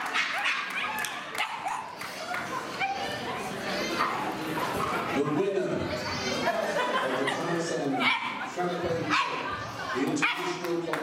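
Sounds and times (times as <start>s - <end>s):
chatter of people: 0.0s - 11.0s
dog barking and yipping: 0.1s - 1.9s, 8.0s - 8.4s, 9.1s - 9.4s.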